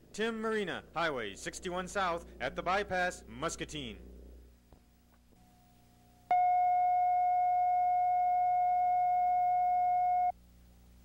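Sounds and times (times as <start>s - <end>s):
faint low hum: 0.0s - 11.0s
electronic test tone: 6.3s - 10.4s.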